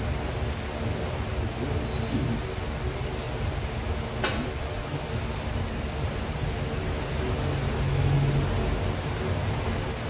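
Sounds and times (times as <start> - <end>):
crowded room rumble: 0.0 - 10.0.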